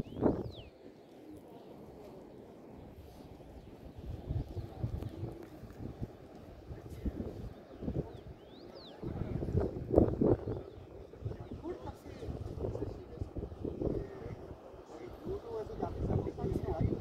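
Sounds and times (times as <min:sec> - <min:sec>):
distant people talking: 0:00.0 - 0:17.0
low rumble of outdoor air: 0:00.0 - 0:17.0.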